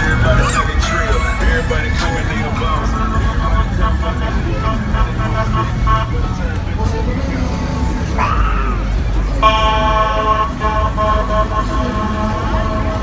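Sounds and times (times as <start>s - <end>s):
cars rolling slowly past: 0.0s - 13.0s
music with heavy bass: 0.0s - 13.0s
people's voices: 0.0s - 13.0s.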